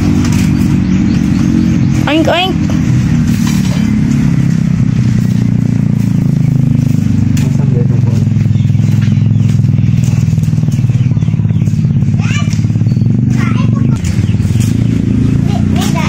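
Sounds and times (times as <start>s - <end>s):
small engine idling: 0.0s - 16.0s.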